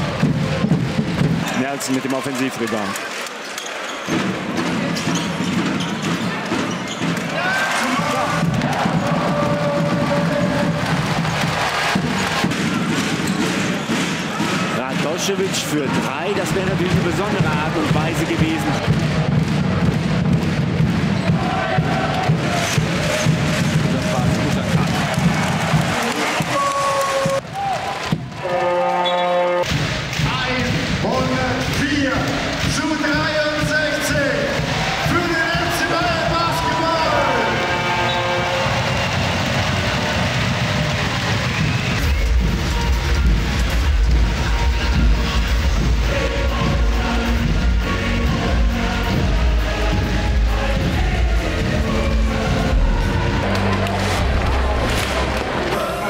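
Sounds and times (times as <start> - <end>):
arena crowd: 0.0 - 56.0.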